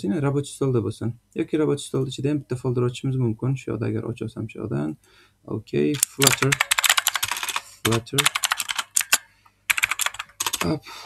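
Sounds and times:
computer keyboard typing: 6.0s - 10.8s.

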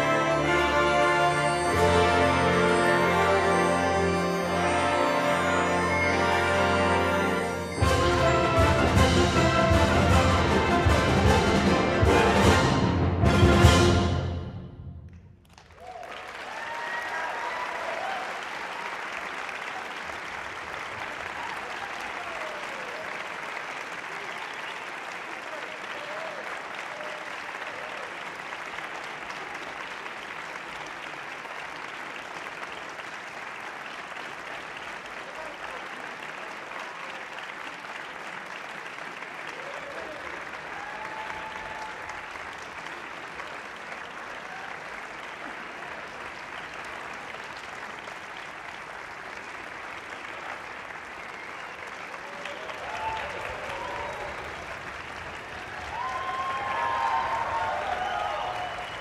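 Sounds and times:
audience applauding: 0.0s - 12.8s, 15.1s - 59.0s
voices cheering: 15.8s - 19.0s, 20.9s - 23.4s, 24.0s - 28.2s, 39.5s - 42.5s, 44.3s - 45.6s, 51.1s - 59.0s.

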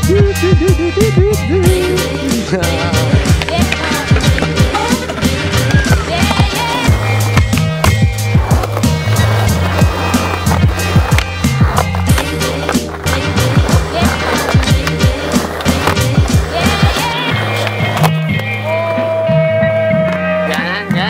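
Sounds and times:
background music with bass line: 0.0s - 21.0s
skateboard rolling on concrete: 0.0s - 21.0s
skateboard deck clacks: 3.1s - 18.6s.

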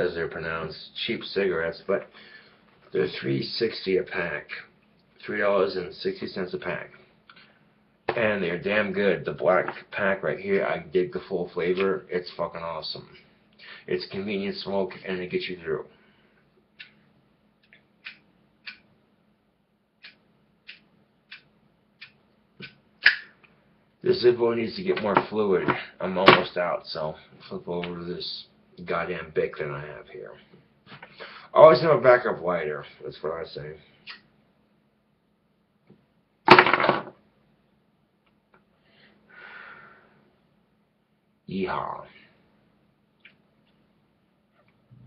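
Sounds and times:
breathy exhale: 31.1s - 31.5s, 38.8s - 40.3s.

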